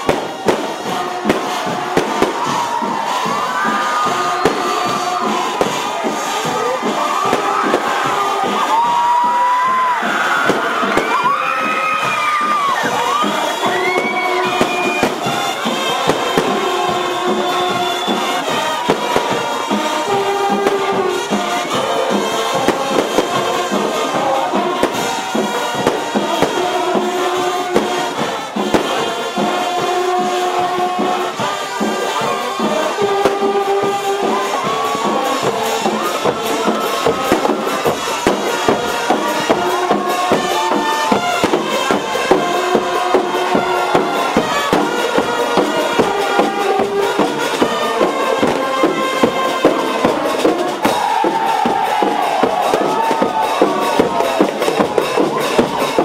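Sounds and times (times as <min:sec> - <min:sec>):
crowd cheering: 0:00.0 - 0:56.0
fireworks crackling: 0:00.0 - 0:56.0
marching band drums and brass: 0:00.0 - 0:56.0.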